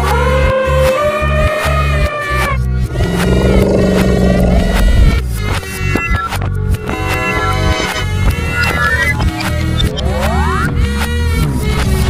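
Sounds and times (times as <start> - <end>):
loud low drone: 2.8 - 5.6.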